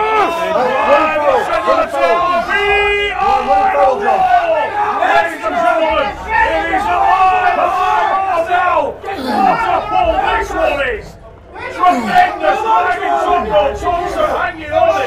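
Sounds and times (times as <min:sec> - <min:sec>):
crowd yelling and shouting: 0:00.0 - 0:15.0
person crying out: 0:09.2 - 0:09.7.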